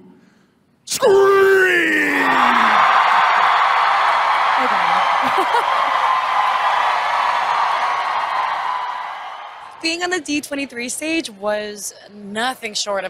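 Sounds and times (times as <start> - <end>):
crowd screaming and cheering: 1.1 - 9.8
woman laughing: 4.7 - 5.9.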